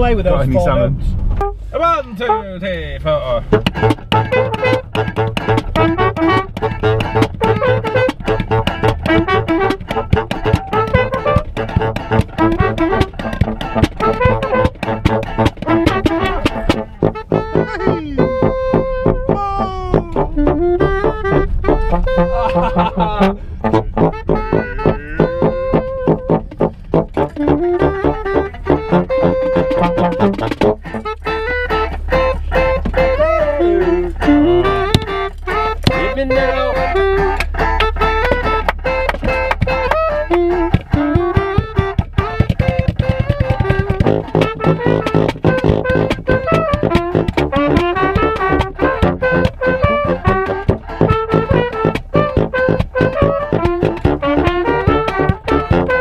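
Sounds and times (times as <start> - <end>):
brass band playing: 3.5 - 56.0.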